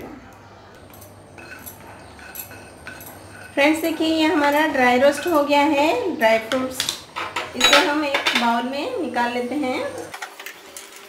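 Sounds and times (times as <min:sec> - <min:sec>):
wooden spatula scraping pan: 0:01.2 - 0:07.6.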